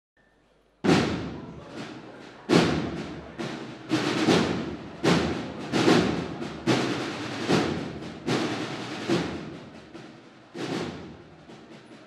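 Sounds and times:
loud drum strokes: 0:00.8 - 0:12.0.

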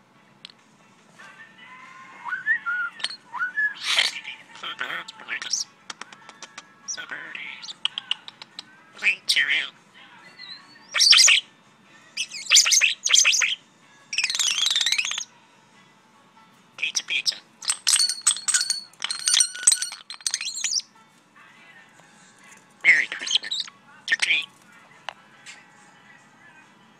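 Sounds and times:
starling singing: 0:01.5 - 0:15.4, 0:16.8 - 0:21.0, 0:21.8 - 0:26.6.

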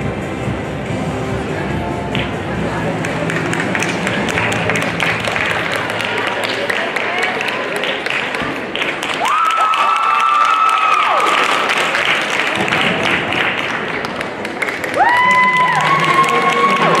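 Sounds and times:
crowd applauding and cheering: 0:02.1 - 0:17.0
high-pitched whoops: 0:15.0 - 0:17.0.

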